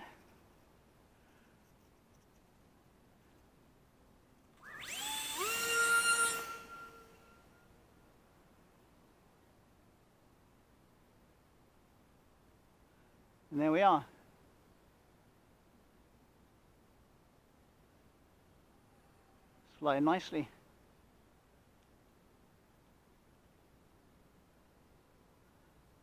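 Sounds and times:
model plane electric motor whining: 4.6s - 7.5s.

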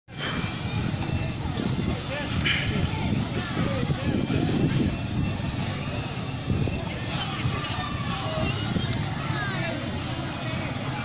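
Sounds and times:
indistinct voices: 0.1s - 11.0s
steady low rumble: 0.1s - 11.0s.

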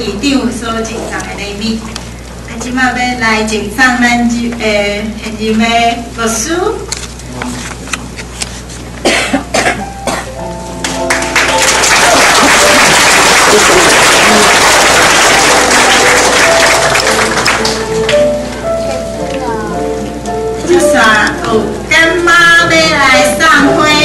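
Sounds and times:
music of held notes: 9.8s - 24.0s
congregation applauding: 10.8s - 18.4s.

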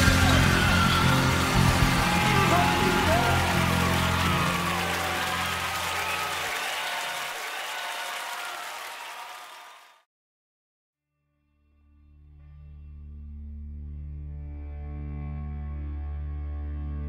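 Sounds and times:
voices crying out: 0.0s - 7.4s
crowd applause: 0.0s - 10.0s.

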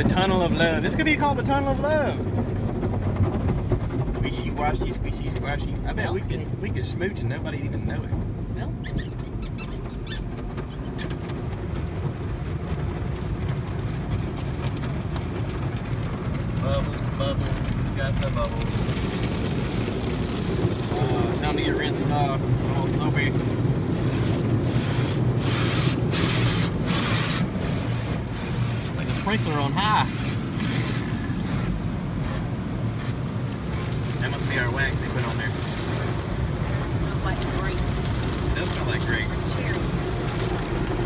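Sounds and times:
low rumble: 0.0s - 8.8s, 9.9s - 41.0s
car wash water jets spraying: 0.0s - 41.0s
car wash strips sweeping over car: 22.0s - 41.0s.

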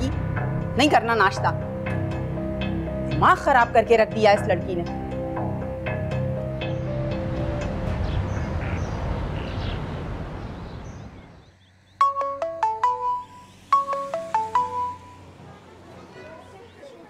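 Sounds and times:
background music: 0.0s - 10.4s, 12.0s - 15.5s
mobile phone ringtone: 12.0s - 15.3s.

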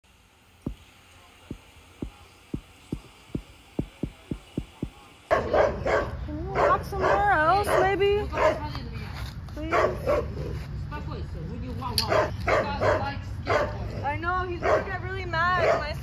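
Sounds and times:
soft thumps: 1.5s - 5.0s
dogs barking: 5.3s - 8.7s, 9.6s - 10.5s, 12.0s - 13.8s, 14.6s - 15.0s, 15.6s - 16.0s.

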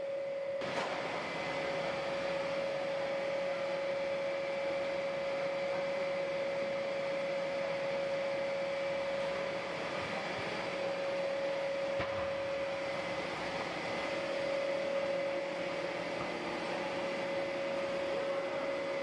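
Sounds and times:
mid-pitched machine whine: 0.0s - 19.0s.

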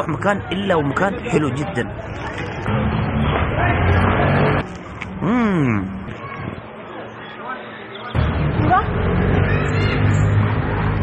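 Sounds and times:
man humming mmm while chewing: 5.2s - 6.0s.

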